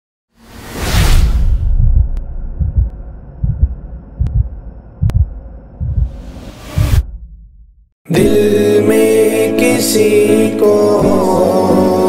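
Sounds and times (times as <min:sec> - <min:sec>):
whoosh: 0:00.3 - 0:07.9
low rumble: 0:00.4 - 0:08.0
deep low thumps: 0:01.1 - 0:08.0.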